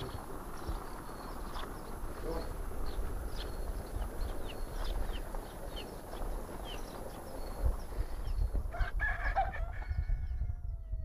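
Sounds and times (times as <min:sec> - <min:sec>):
small birds chirping: 0:00.0 - 0:08.8
rooster crowing: 0:08.7 - 0:11.0.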